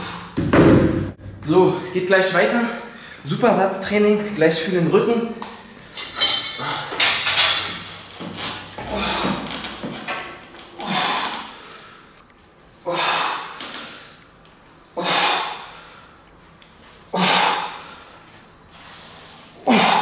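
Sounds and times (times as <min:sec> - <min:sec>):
man exhaling forcefully: 0:08.8 - 0:09.7.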